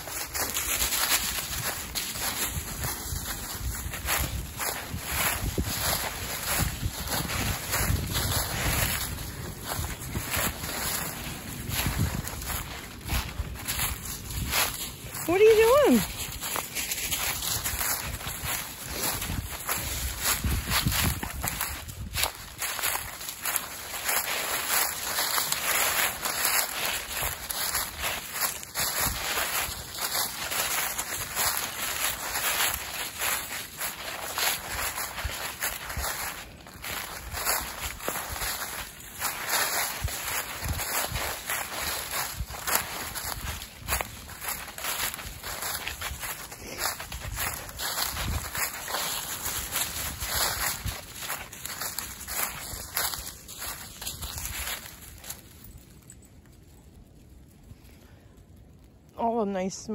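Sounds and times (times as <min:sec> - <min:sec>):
footsteps crunching dry leaves: 0:00.0 - 0:59.9.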